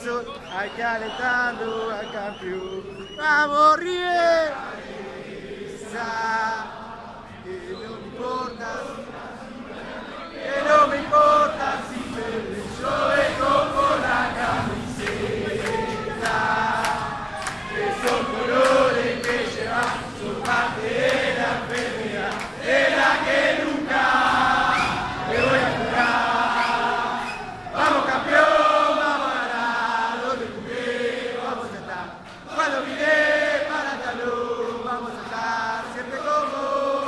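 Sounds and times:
crowd of men chanting: 0:00.0 - 0:37.0.

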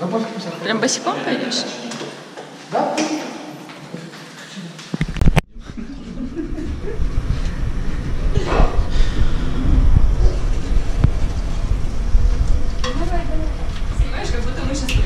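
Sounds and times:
elevator low rumble: 0:05.5 - 0:15.0.

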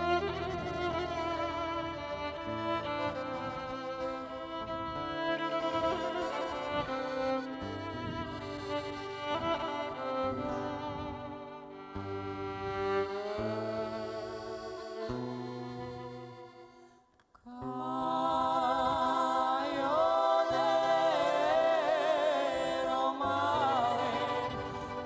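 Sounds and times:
guitar accompaniment: 0:00.0 - 0:25.0
violin melody: 0:00.0 - 0:25.0.

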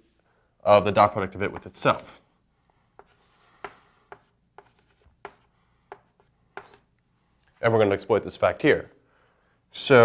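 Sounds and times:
faint chalk scratching: 0:01.4 - 0:07.7
chalk tapping on blackboard: 0:02.9 - 0:06.9.

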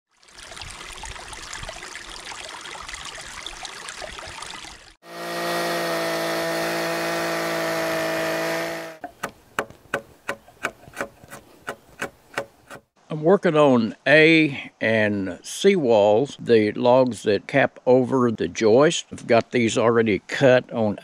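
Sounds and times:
chainsaw running: 0:05.0 - 0:09.3
slick scraping wood: 0:05.1 - 0:12.9.

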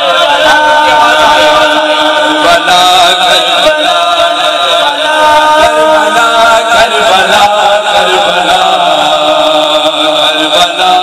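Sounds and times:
man chanting through loudspeakers: 0:00.0 - 0:11.0.

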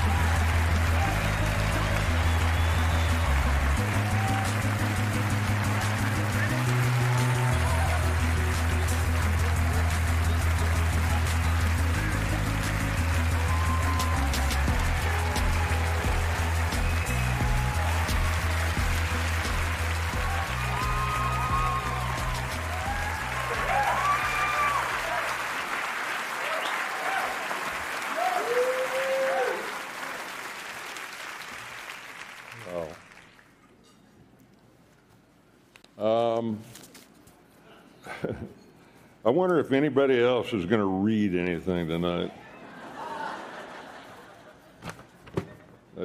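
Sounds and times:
audience applauding: 0:00.0 - 0:33.6
play-on music with bass line: 0:03.2 - 0:23.7.

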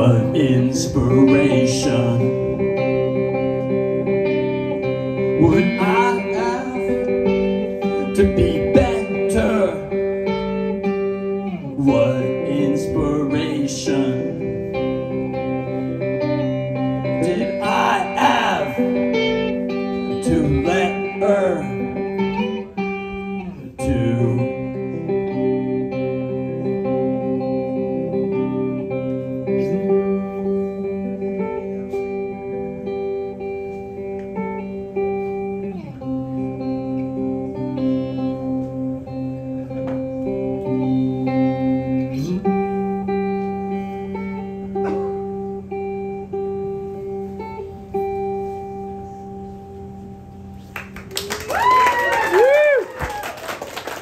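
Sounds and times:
electric guitar chords: 0:00.0 - 0:54.0.

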